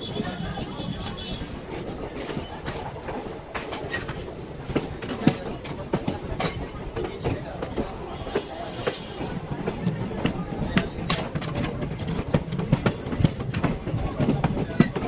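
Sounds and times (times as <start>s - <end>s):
train rumbling: 0.0s - 15.0s
train wheels clacking over rail joints: 0.1s - 15.0s.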